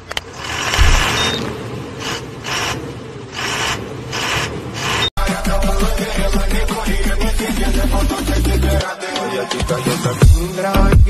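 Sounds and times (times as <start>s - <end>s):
low boom: 0.8s - 1.4s
whooshes: 0.8s - 1.5s
electronic hip-hop music: 5.2s - 11.0s.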